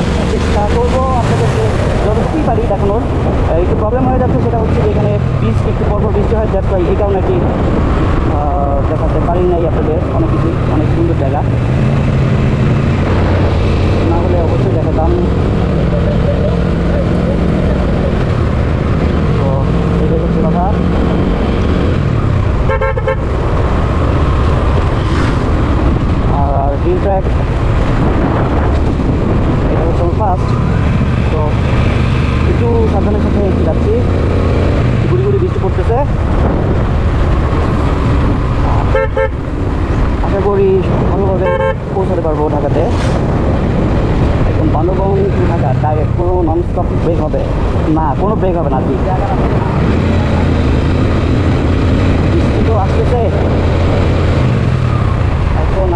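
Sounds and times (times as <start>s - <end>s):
wind rushing over microphone: 0.0s - 55.9s.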